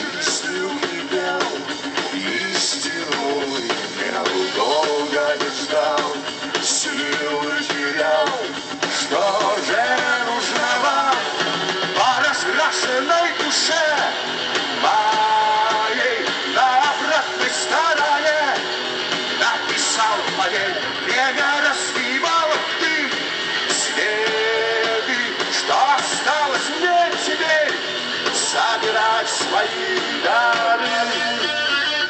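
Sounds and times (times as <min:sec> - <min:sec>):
person singing: 0:00.0 - 0:18.7, 0:19.4 - 0:32.0
live rock band playing: 0:00.0 - 0:32.0.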